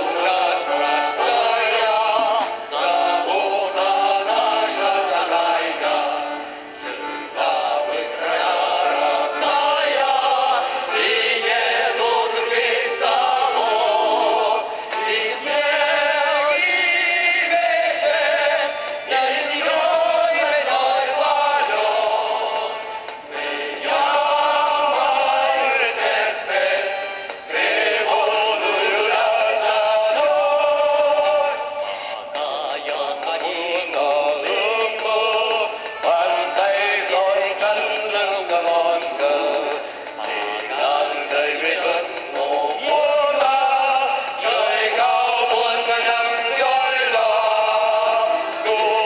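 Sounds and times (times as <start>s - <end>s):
group singing with accompaniment: 0.0s - 49.0s.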